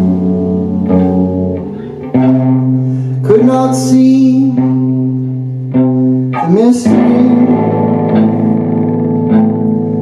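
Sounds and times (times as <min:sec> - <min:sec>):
electric guitars sustained chords: 0:00.0 - 0:10.0.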